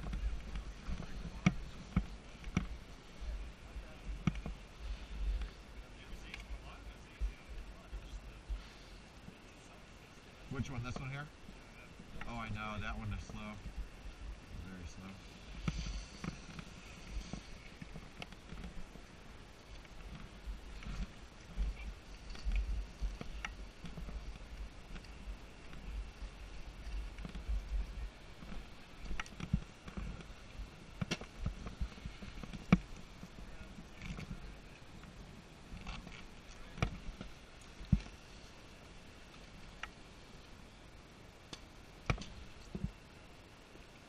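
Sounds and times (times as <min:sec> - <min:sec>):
ski gear clicking and knocking: 0:00.0 - 0:03.4, 0:04.1 - 0:04.6, 0:15.4 - 0:34.4, 0:41.5 - 0:43.0.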